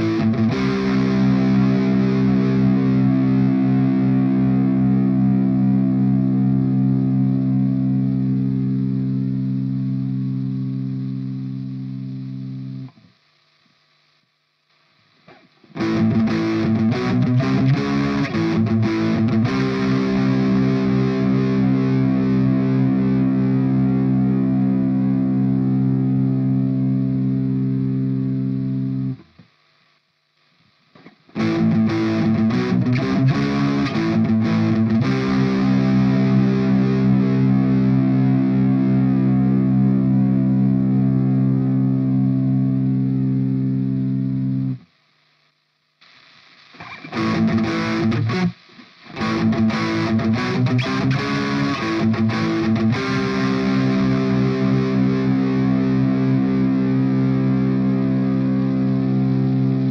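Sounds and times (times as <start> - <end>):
distorted electric guitar: 0.0 - 59.9.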